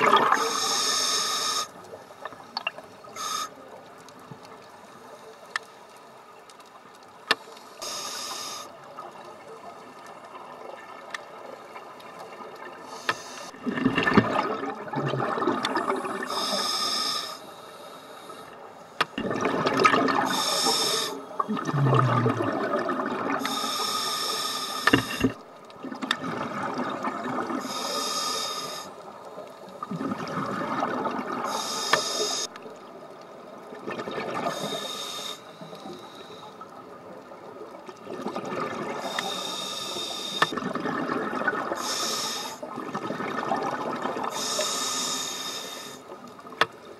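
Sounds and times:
diver breathing through regulator: 0.3 - 1.8, 3.1 - 3.6, 7.7 - 8.7, 12.9 - 13.6, 15.8 - 19.2, 20.1 - 21.3, 23.4 - 25.4, 27.6 - 29.0, 31.5 - 32.5, 34.5 - 36.7, 39.0 - 40.6, 41.7 - 42.6, 44.3 - 46.1.

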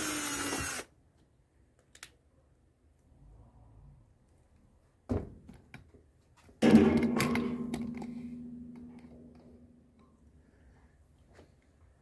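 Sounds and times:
metal lid strike ringing: 6.6 - 9.8.

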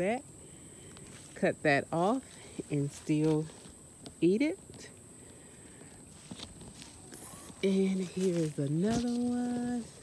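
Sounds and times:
footsteps in undergrowth: 0.9 - 10.0.

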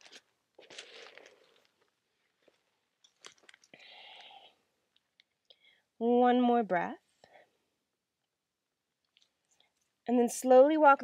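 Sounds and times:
small clicks and rustles: 0.0 - 3.8, 4.9 - 5.6, 9.0 - 10.1
faint breathing: 3.7 - 4.7, 5.5 - 6.0.

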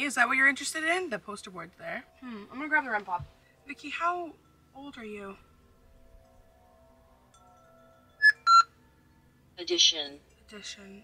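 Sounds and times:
short electronic beeps: 8.2 - 8.7.

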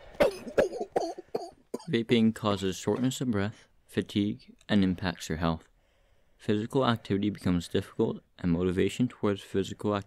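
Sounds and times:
person coughing: 0.2 - 2.0.

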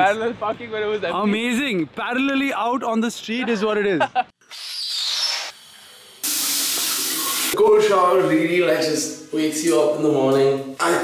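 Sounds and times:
shower spraying water: 4.8 - 7.6.

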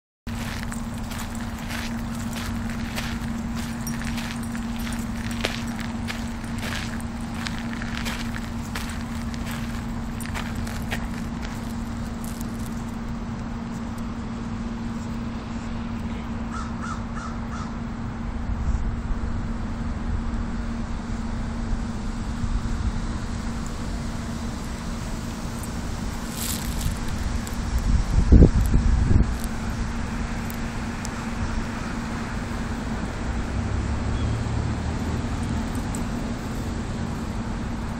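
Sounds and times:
footsteps on gravel: 0.3 - 13.0, 25.6 - 27.7
steady low hum: 0.3 - 37.9.

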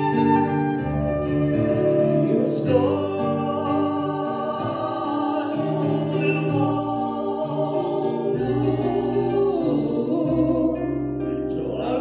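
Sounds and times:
man and woman singing: 1.9 - 10.9, 11.6 - 12.0.

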